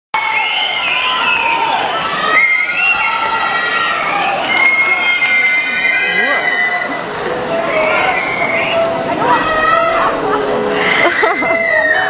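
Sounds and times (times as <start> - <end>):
crowd cheering and screaming: 0.2 - 12.0.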